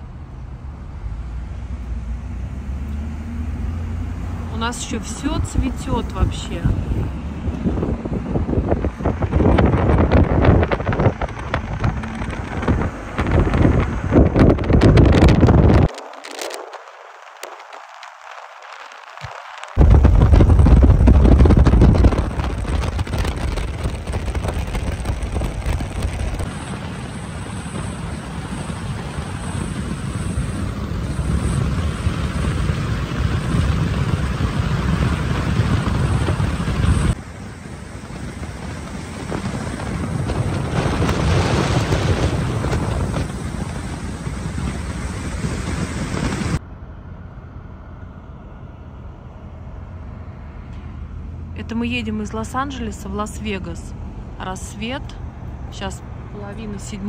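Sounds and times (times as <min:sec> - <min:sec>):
wind buffeting microphone: 0:00.0 - 0:46.6
car road noise: 0:00.0 - 0:57.0.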